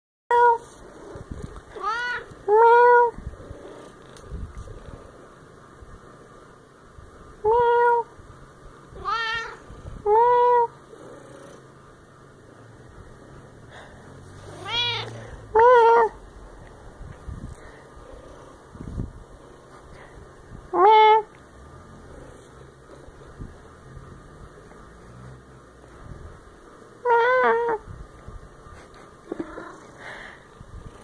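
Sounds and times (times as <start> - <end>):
cat meowing: 1.7 - 3.2, 9.0 - 10.7, 14.5 - 16.2, 27.0 - 27.8.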